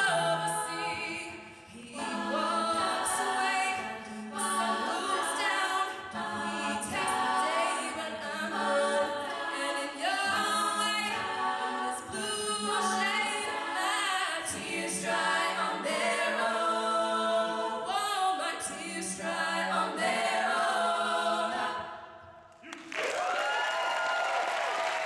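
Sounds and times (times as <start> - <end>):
women singing a cappella: 0.0 - 22.5.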